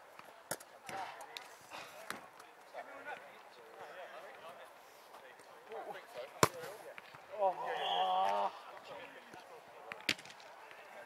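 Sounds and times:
football kick smack: 6.4s - 6.7s
faint shouts of players: 7.3s - 9.4s.

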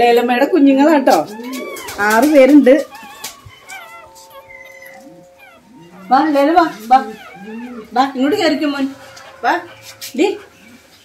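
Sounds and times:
puppies squeaking and whimpering: 0.1s - 11.0s.

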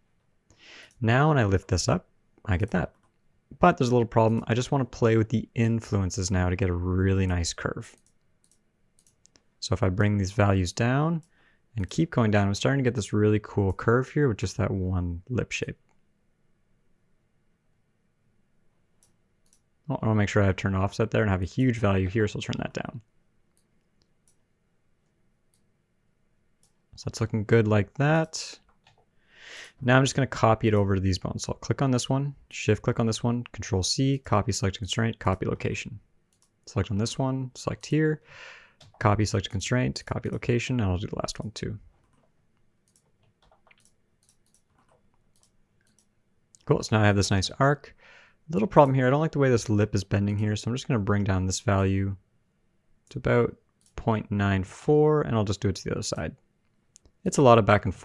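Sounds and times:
computer mouse clicks: 7.9s - 9.5s, 19.0s - 19.6s, 36.3s - 36.6s, 42.0s - 46.7s
computer mouse and keyboard clicks: 42.9s - 46.1s.

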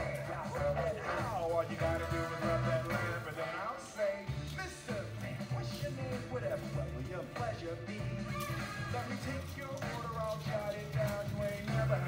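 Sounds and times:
song with singing over a beat: 0.0s - 12.0s.

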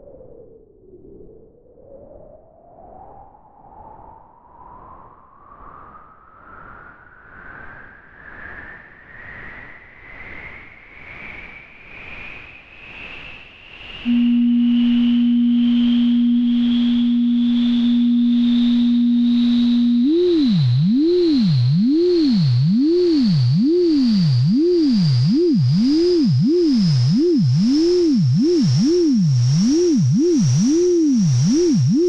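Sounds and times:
steady sine tone: 14.0s - 32.0s
filtered synth noise rising whoosh: 14.1s - 32.0s.

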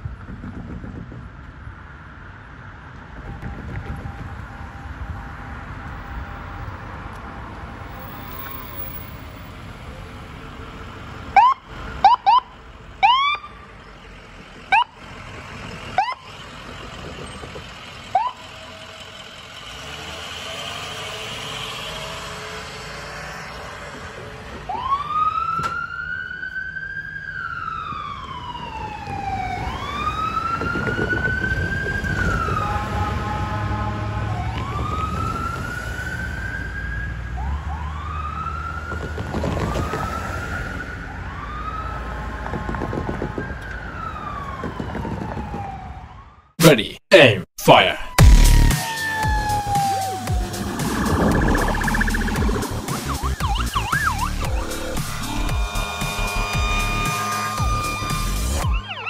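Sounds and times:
low vehicle engine rumble: 0.0s - 26.6s
ambulance siren: 3.2s - 9.1s, 11.3s - 13.6s, 14.7s - 15.0s, 15.9s - 16.4s, 17.0s - 46.6s, 48.0s - 59.0s.

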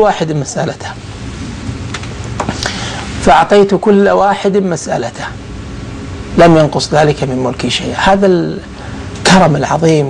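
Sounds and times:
recording hiss with low rumble: 0.0s - 10.0s.

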